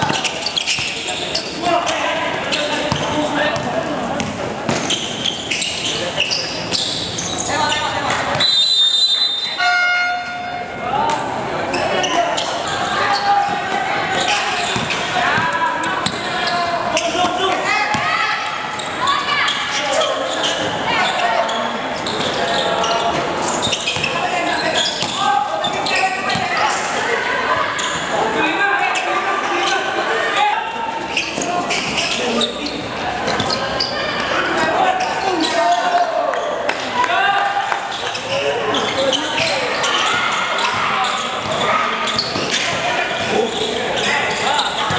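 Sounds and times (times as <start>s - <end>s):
players and spectators shouting: 0.0s - 44.9s
basketball bouncing on court: 2.8s - 5.0s, 14.6s - 16.2s, 17.0s - 18.2s, 25.0s - 26.6s.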